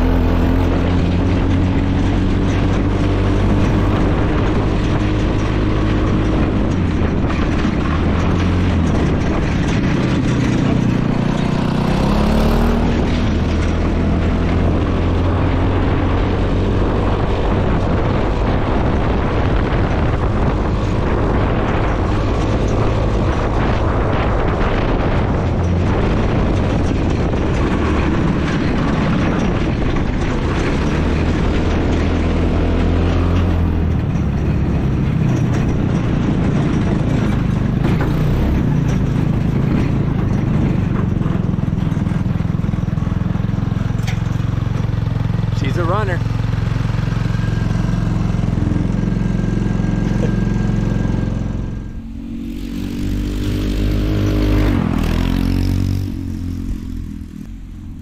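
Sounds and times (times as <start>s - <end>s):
go-kart engine running: 0.0s - 58.0s.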